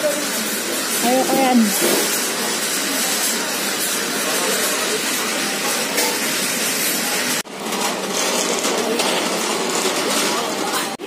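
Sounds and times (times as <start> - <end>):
busy restaurant background noise: 0.0 - 11.0.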